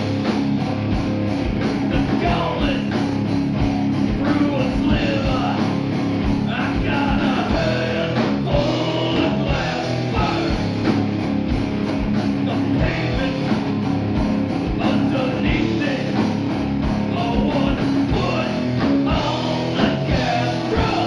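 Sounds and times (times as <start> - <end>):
distorted electric guitars: 0.0 - 21.0
driving kick drum: 0.0 - 21.0
heavy metal band playing: 0.0 - 21.0.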